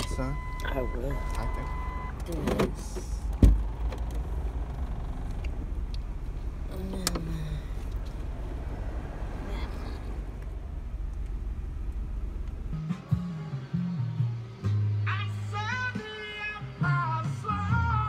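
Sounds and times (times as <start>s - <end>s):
car engine idling: 0.0s - 13.8s.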